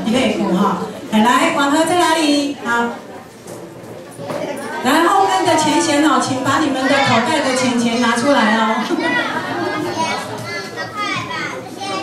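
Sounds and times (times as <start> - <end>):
children talking and calling out: 4.2 - 12.0.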